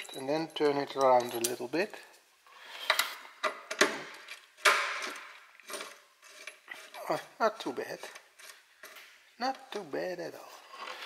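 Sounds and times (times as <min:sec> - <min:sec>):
hose fitting clinking on metal: 0:00.0 - 0:02.1.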